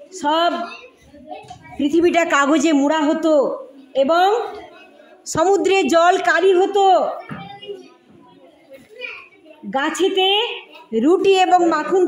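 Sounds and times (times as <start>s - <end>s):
children murmuring faintly: 3.6s - 5.4s, 7.1s - 11.2s.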